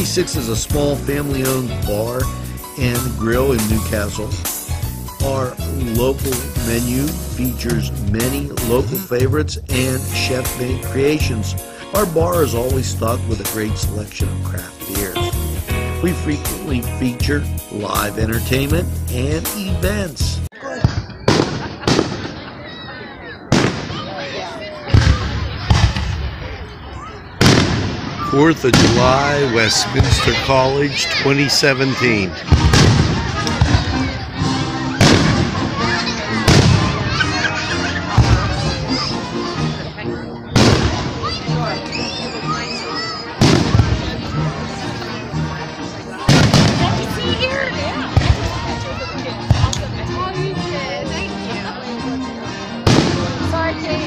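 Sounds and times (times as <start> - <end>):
music: 0.0 - 20.6, 24.9 - 54.0
firework booms and bangs: 20.8 - 22.4, 23.5 - 24.1, 24.9 - 26.3, 27.4 - 29.0, 32.5 - 34.0, 35.0 - 35.7, 36.4 - 37.0, 40.6 - 41.2, 43.4 - 44.1, 46.3 - 47.0, 52.8 - 53.4.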